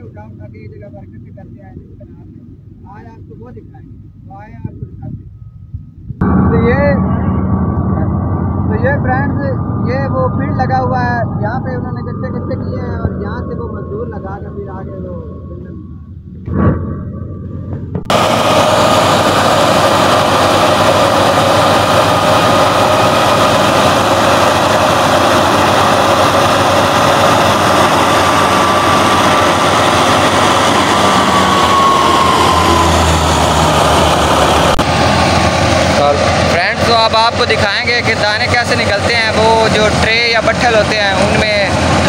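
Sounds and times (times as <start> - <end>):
thresher and tractor engine din: 6.2 - 42.0.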